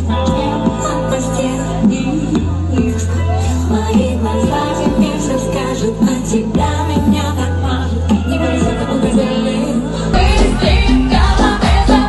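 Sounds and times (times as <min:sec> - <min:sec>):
pop backing track with bass: 0:00.0 - 0:12.0
woman singing into microphone: 0:00.0 - 0:12.0.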